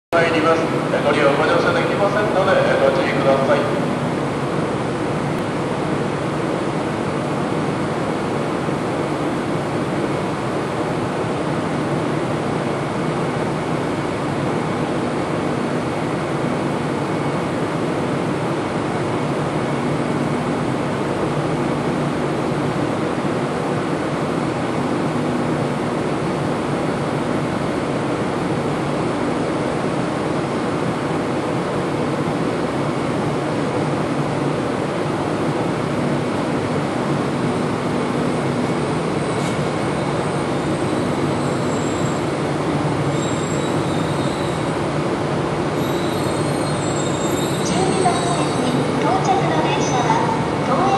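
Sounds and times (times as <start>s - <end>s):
train machinery hum: 0.1s - 50.9s
train rolling into platform: 0.1s - 50.9s
wheel and brake squeals: 39.2s - 42.4s, 43.1s - 44.9s, 45.8s - 48.9s.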